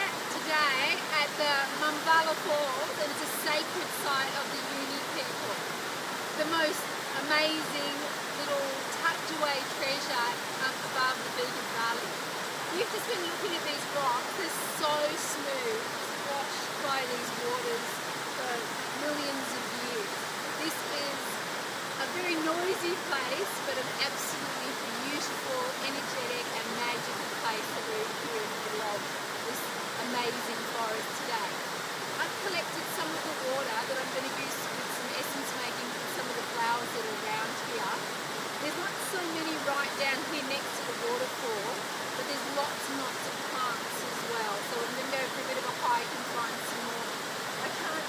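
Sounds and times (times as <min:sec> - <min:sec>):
water gurgles: 0:00.0 - 0:48.0
waterfall rushing over rock: 0:00.0 - 0:48.0.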